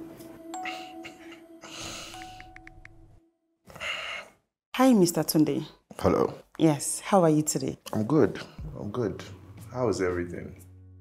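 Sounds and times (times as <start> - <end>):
breathy sigh: 0.6 - 2.5.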